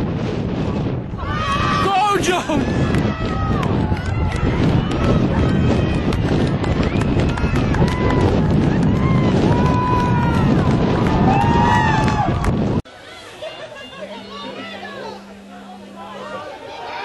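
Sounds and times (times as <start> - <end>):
people shouting and yelling: 1.1 - 6.2
steady background noise: 12.8 - 17.0.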